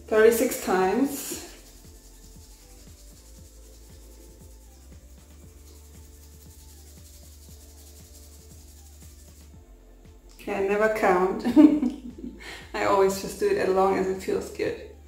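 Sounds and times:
soft background music: 0:00.0 - 0:15.0
hands rubbing ears: 0:00.3 - 0:09.5.

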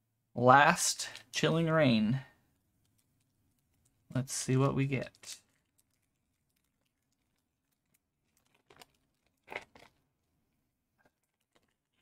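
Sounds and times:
foil wrapper crinkling and tearing: 0:05.1 - 0:10.0.

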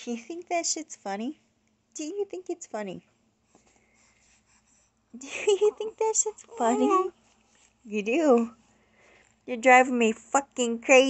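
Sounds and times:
faint clicks and rustles: 0:05.5 - 0:09.5.

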